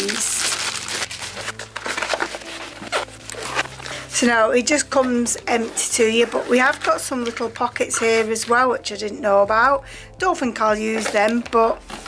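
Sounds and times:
fabric rustling: 0:00.0 - 0:08.5
zip being pulled open: 0:01.3 - 0:04.2.

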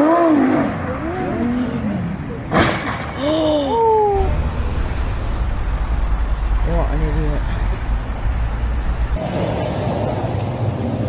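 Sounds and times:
road traffic rumble: 0:00.0 - 0:11.0
roadway noise hiss: 0:00.4 - 0:11.0.

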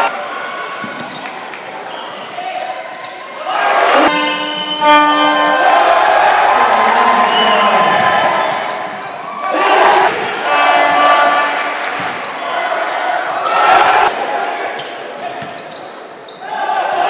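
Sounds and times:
crowd noise: 0:00.0 - 0:17.0
person talking: 0:06.5 - 0:08.4.

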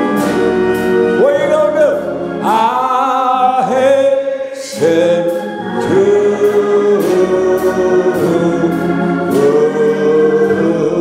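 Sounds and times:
congregation singing: 0:00.0 - 0:11.0
man singing a hymn: 0:00.0 - 0:11.0.

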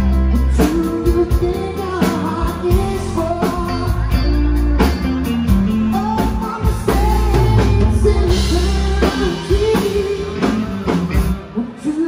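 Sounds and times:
drum kit beat: 0:00.0 - 0:11.5
electric guitar: 0:00.0 - 0:12.0
man singing: 0:00.0 - 0:12.0.

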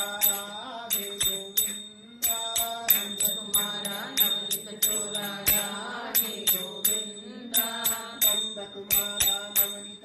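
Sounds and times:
bell-like metallic percussion: 0:00.0 - 0:10.0.

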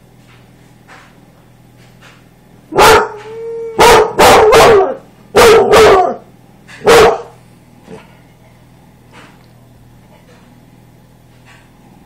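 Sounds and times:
dog barking loudly: 0:02.7 - 0:03.2, 0:03.8 - 0:07.4.

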